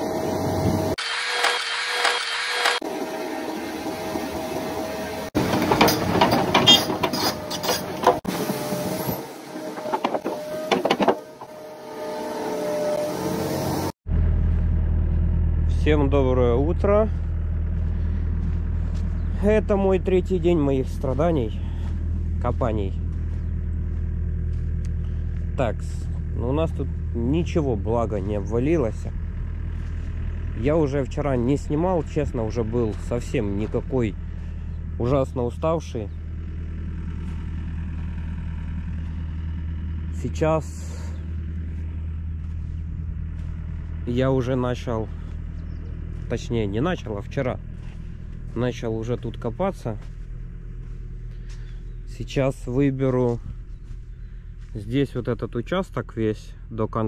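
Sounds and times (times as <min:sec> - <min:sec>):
diesel engine idling: 0:02.8 - 0:57.0.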